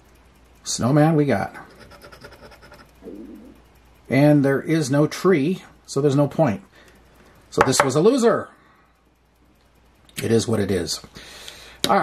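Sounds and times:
coin scraping scratch card: 0:01.6 - 0:03.0.

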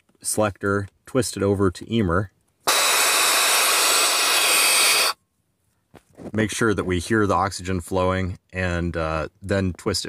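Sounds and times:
oxygen hissing through mask: 0:02.6 - 0:05.2.

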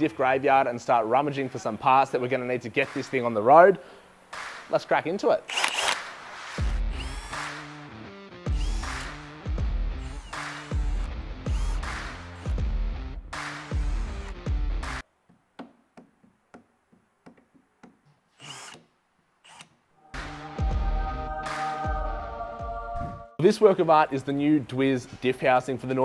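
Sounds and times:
background music with steady beat: 0:01.2 - 0:05.4, 0:06.0 - 0:15.1, 0:20.0 - 0:24.5
cordless drill backing out screws: 0:05.5 - 0:06.0.

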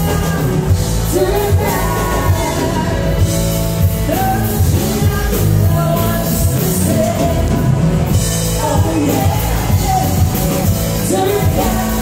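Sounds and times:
bar crowd noise: 0:00.0 - 0:12.0
electric guitar: 0:00.0 - 0:12.0
person singing: 0:00.0 - 0:12.0
steady drum beat: 0:00.0 - 0:12.0.

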